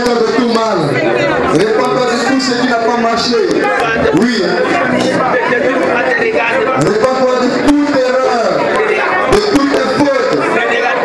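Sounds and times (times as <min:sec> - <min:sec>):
people praying aloud: 0:00.0 - 0:11.0.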